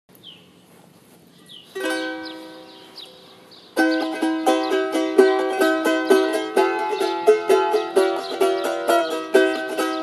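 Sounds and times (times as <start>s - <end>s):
small lute strumming: 1.8s - 10.0s.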